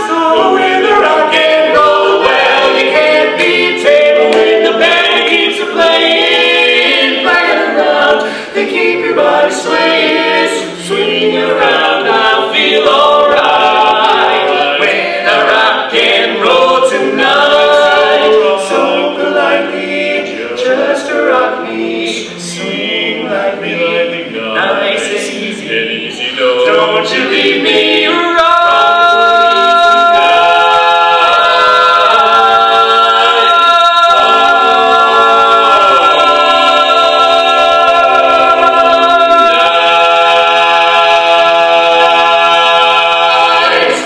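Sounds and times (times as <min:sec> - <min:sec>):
male quartet singing a cappella: 0:00.0 - 0:44.0.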